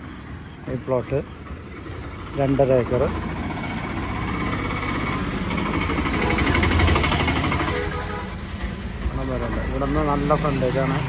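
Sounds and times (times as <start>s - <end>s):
fast rattling machine: 2.9s - 8.0s.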